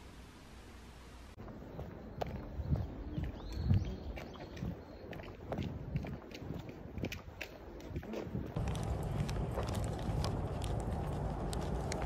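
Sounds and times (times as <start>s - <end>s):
footsteps on asphalt: 1.4s - 12.0s.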